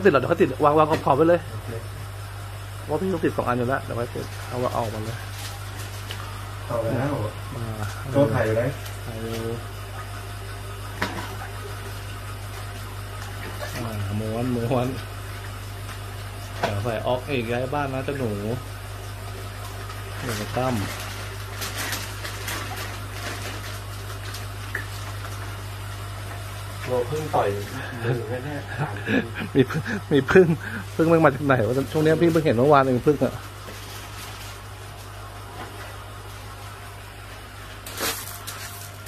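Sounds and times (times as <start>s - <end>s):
aquarium pump humming: 0.0s - 39.0s
plastic bag crinkling: 20.2s - 25.3s, 37.8s - 39.0s.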